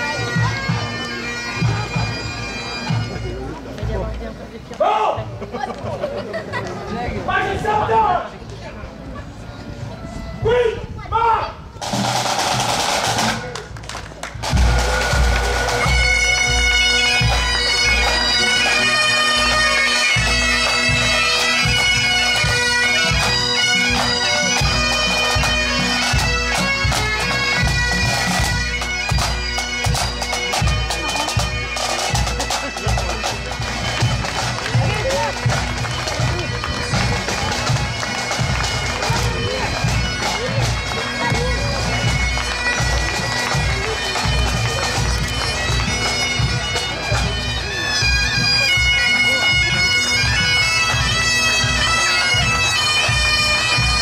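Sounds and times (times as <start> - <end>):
bagpipes playing: 0.0 - 4.2, 14.3 - 54.0
drum beat: 11.8 - 13.6, 14.4 - 18.4, 29.1 - 47.4.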